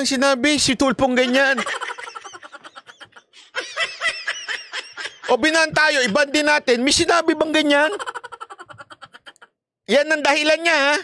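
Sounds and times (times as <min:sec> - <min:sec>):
man laughing: 0:01.2 - 0:06.4, 0:07.6 - 0:09.6.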